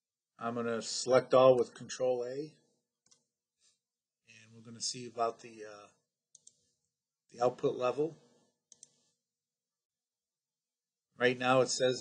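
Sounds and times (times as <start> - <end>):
faint computer mouse clicks: 6.4 - 6.6, 8.7 - 9.0.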